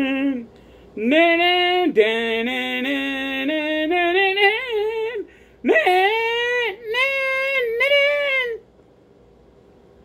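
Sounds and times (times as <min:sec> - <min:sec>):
high-pitched voice singing: 0:05.7 - 0:08.6.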